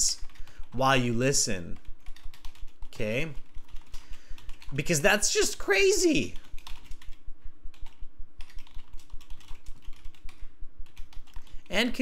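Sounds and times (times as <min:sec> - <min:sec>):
typing on keyboard: 0:01.7 - 0:05.0, 0:06.3 - 0:12.0.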